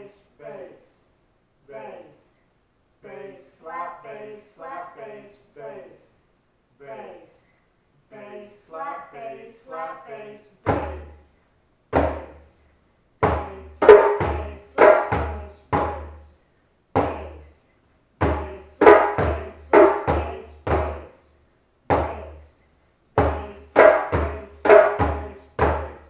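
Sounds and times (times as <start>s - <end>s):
djembe strokes: 12.0s - 12.5s, 13.2s - 16.2s, 18.2s - 21.2s, 21.9s - 22.5s, 23.2s - 26.0s.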